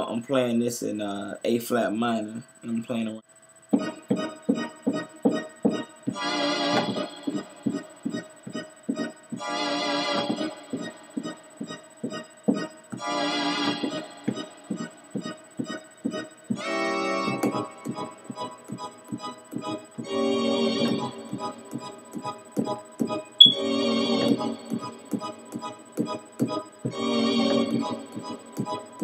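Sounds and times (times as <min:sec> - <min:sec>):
electronic organ keyboard playing: 0:03.7 - 0:29.0.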